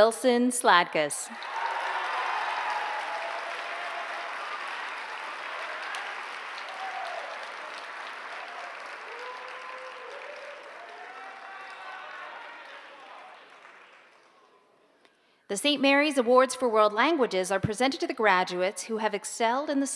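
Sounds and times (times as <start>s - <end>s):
audience applauding: 1.4s - 14.7s.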